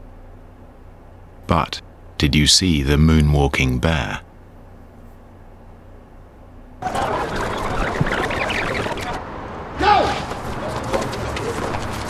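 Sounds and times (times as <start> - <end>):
warbling rush of rewinding video: 6.8 - 9.3.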